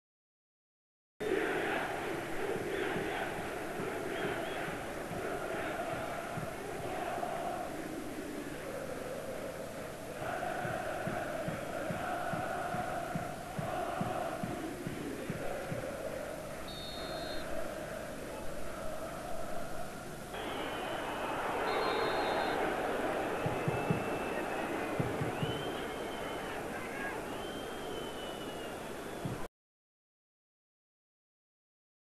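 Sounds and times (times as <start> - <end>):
stadium crowd chanting: 1.2 - 29.5.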